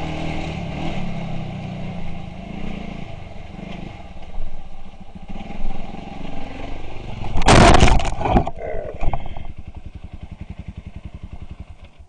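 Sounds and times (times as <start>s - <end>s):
dirt bike engine putting: 7.1s - 12.0s.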